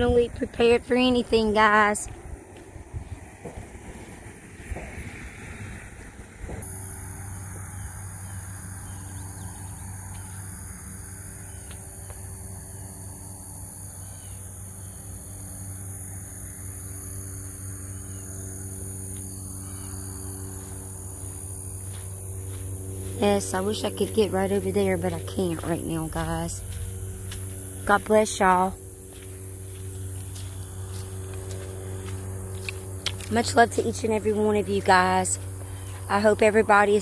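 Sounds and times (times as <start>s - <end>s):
high-pitched buzz: 0.0s - 37.0s
low machine-like hum: 0.0s - 37.0s.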